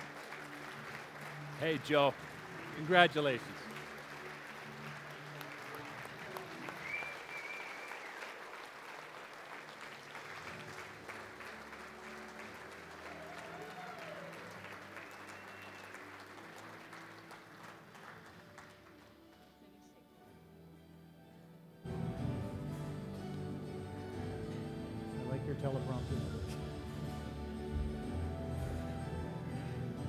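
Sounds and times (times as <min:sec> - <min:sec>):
audience applauding: 0:00.0 - 0:19.5.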